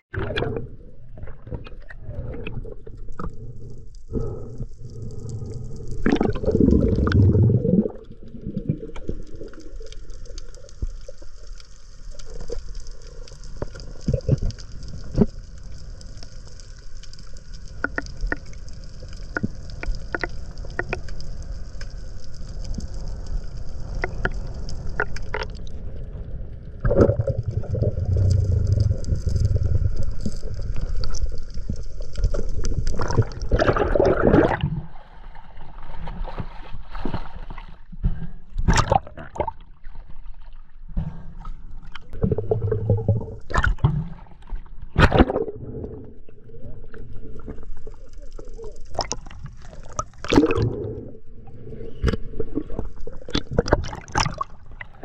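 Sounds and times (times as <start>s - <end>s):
low underwater rumble: 0.0s - 55.0s
sharp underwater clicks: 8.9s - 23.2s.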